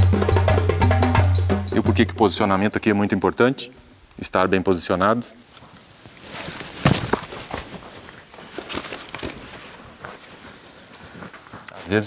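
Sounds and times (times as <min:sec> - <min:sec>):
footsteps scuffing in sand: 0:05.7 - 0:12.0.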